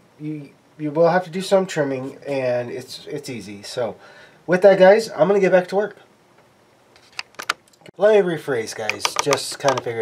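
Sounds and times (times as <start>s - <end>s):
handling clicks and taps: 8.7s - 10.0s.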